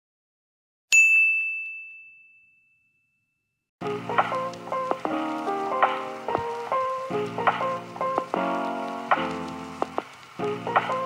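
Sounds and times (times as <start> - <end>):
bell-like ding: 0.9 - 3.4
music: 3.8 - 11.0.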